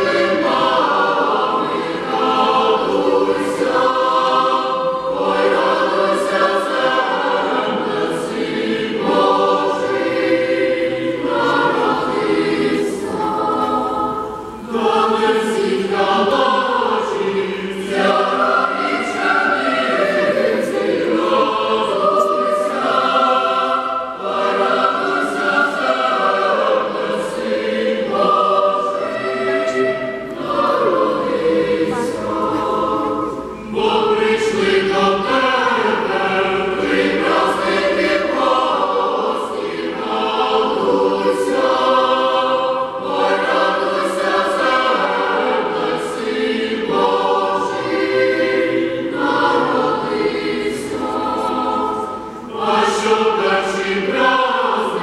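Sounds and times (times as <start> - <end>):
boys' choir singing in harmony: 0.0 - 55.0.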